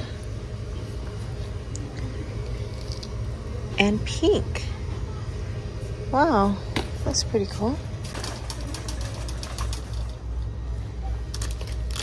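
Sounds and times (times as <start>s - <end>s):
steady low rumble: 0.0s - 8.2s.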